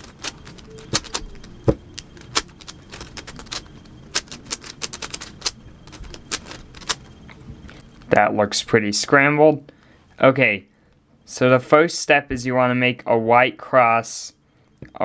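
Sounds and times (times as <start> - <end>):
puzzle cube clicking: 0.0 - 7.1.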